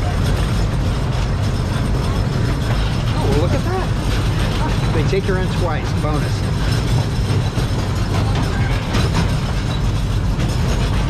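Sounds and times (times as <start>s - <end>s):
miniature train rumbling on track: 0.0s - 11.0s
train cars rattling: 0.0s - 11.0s.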